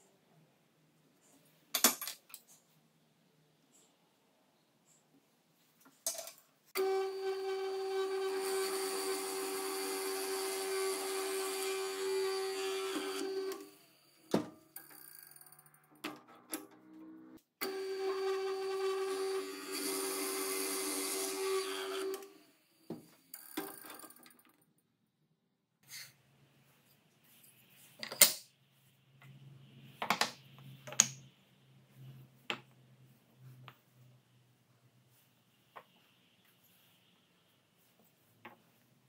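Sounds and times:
power drill boring into wood: 6.8s - 13.7s, 17.6s - 22.3s.

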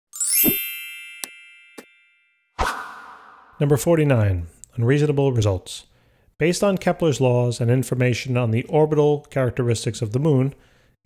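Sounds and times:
bright sweeping chime: 0.1s - 2.6s.

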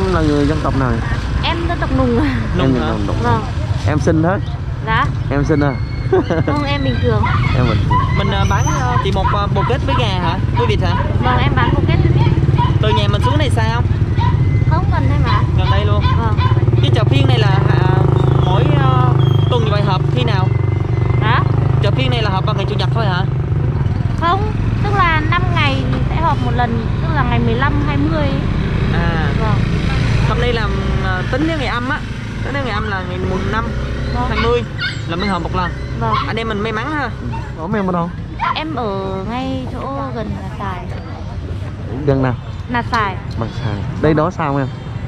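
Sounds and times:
people talking: 0.0s - 13.9s, 14.7s - 20.6s, 21.2s - 23.3s, 24.2s - 44.7s
engine running low hum: 0.0s - 45.0s.

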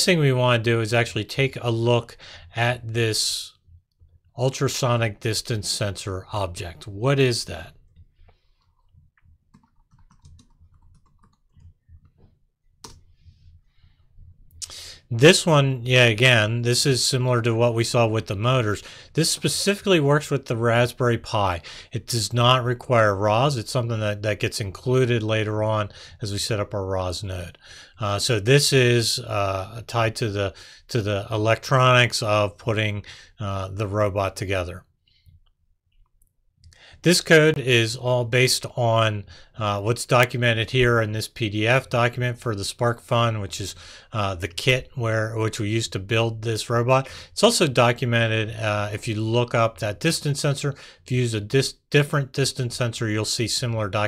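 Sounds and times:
typing on a computer keyboard: 9.5s - 12.1s.

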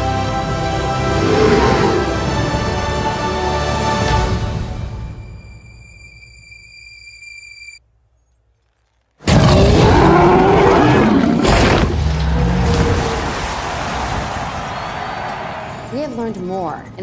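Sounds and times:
gliding roar: 0.6s - 3.0s
loud water crash: 11.4s - 15.6s
rushing water: 11.9s - 15.8s.

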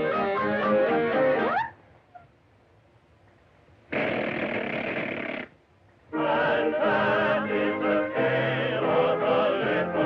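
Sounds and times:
harsh rasping buzz: 3.9s - 5.6s.

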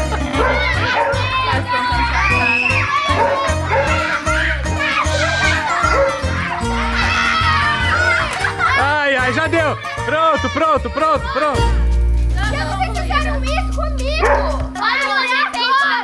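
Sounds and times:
children shrieking and shouting: 0.0s - 11.8s, 12.6s - 16.0s
background music with bass beat: 0.0s - 16.0s.

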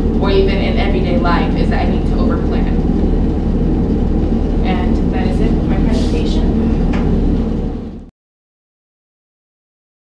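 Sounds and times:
low room noise rumble: 0.0s - 8.1s.

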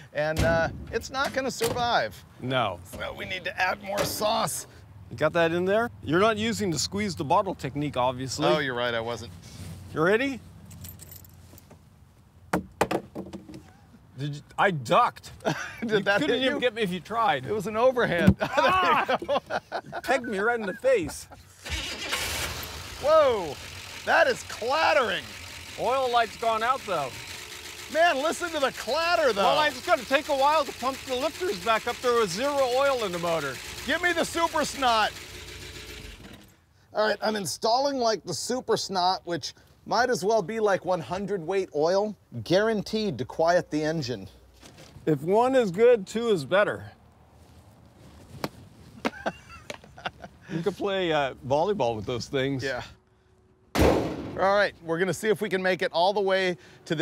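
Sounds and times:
plastic bottle clattering on pavement: 12.6s - 13.6s
engine lifter clatter: 29.6s - 36.6s.

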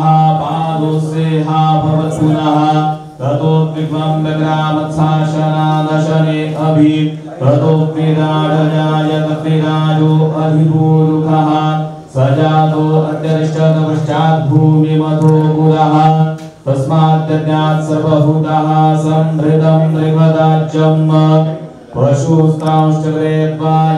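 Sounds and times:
mantra chanting on a steady note: 0.0s - 23.9s.

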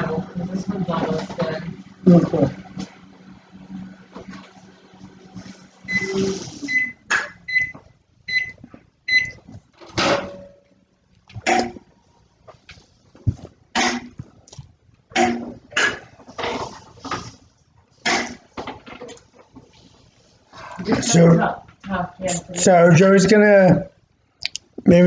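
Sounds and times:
kitchen appliance beeps: 5.8s - 9.4s.

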